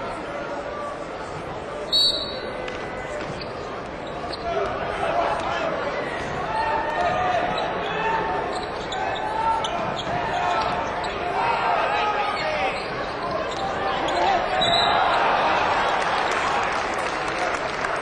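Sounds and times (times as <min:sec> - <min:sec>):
crowd voices: 0:00.0 - 0:18.0.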